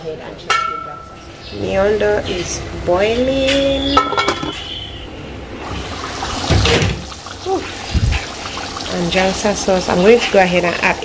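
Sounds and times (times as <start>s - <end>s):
cookware knocks: 4.0s - 4.6s
liquid bubbling in a pot: 4.8s - 11.0s.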